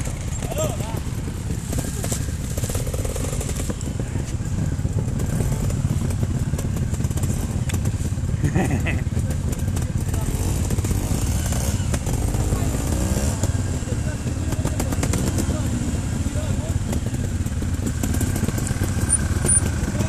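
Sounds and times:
motorcycle engine at low revs: 0.0 - 20.0.

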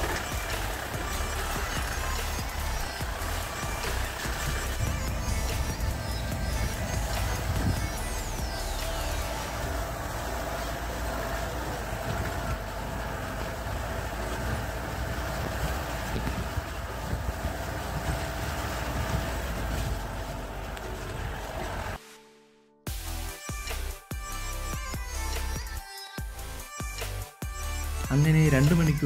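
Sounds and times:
off-road vehicle engine rumbling: 0.0 - 22.0, 23.2 - 29.0.

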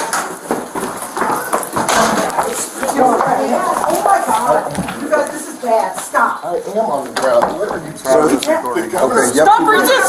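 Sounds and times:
scuffing and knocks: 0.0 - 6.1
strained voices: 0.9 - 10.0.

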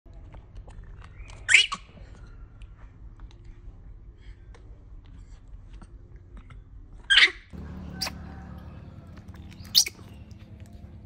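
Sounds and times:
baby monkey squealing: 1.5 - 1.9, 7.1 - 8.2, 9.2 - 10.3.

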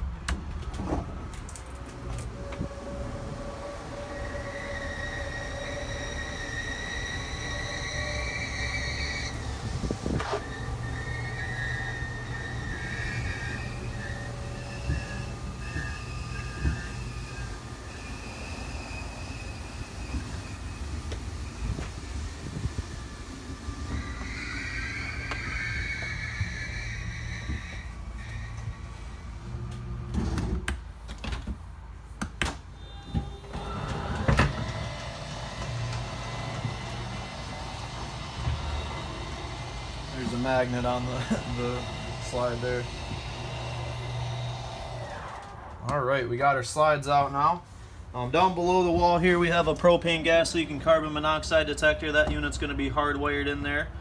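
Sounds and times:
slide-out motor drone with whine: 1.8 - 30.7, 32.8 - 46.0.

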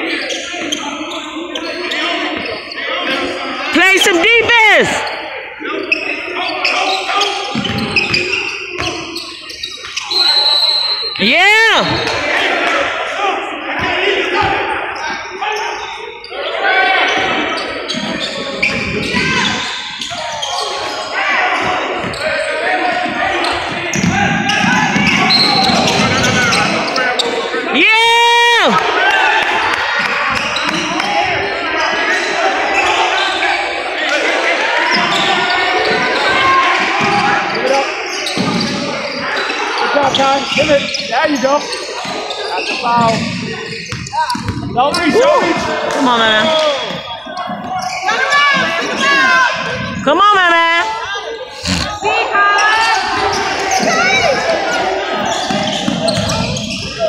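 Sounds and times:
sneakers squeaking: 0.0 - 13.0, 13.7 - 27.7, 30.0 - 57.0
voices calling out in a gym: 0.0 - 57.0
basketball dribbling: 55.3 - 56.9.

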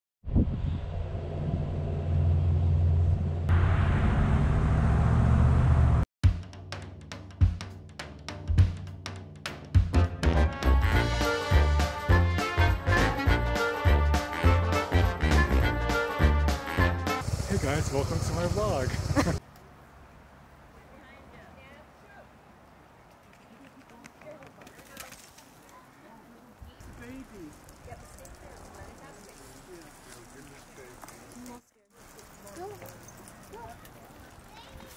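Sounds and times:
car engine low rumble: 0.5 - 6.1
hooves clicking on asphalt: 22.7 - 34.9.

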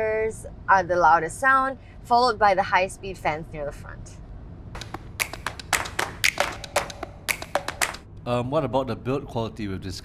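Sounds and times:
sharp clicks or taps: 4.8 - 8.0.

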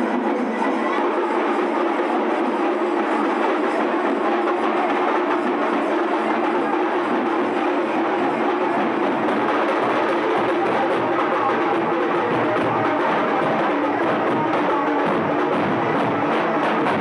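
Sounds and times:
procession band with drums: 0.0 - 17.0.

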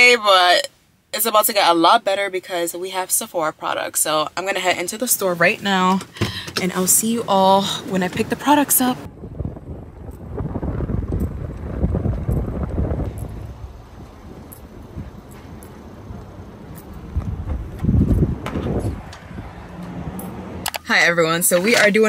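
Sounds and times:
wind buffeting microphone: 7.5 - 20.7.

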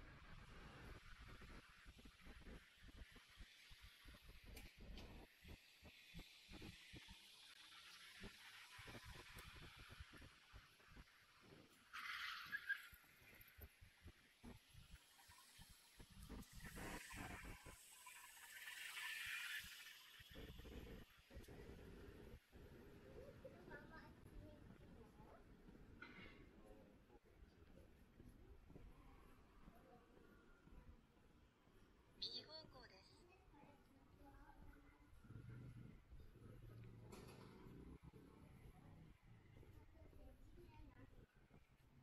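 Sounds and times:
motor scooter passing: 15.2 - 21.0.

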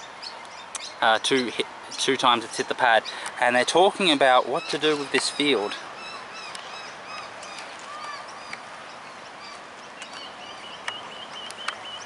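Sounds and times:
bird chirping: 0.0 - 12.0
birds calling: 0.0 - 12.0.

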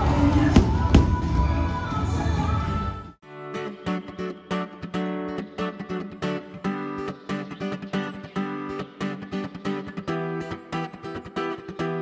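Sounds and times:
music over outdoor loudspeakers: 0.0 - 12.0.

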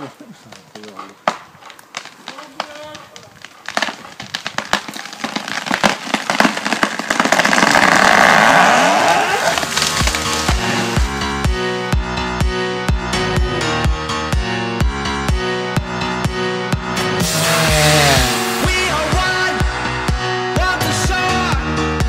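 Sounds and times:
tree trunk cracking and splintering: 0.0 - 11.2, 17.2 - 18.8
tree crashing through branches: 1.9 - 11.2, 17.2 - 18.8.

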